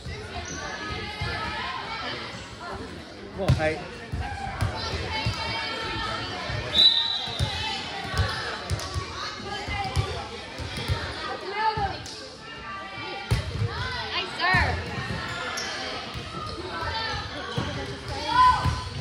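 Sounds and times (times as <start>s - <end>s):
spectators chattering and shouting: 0.0s - 19.0s.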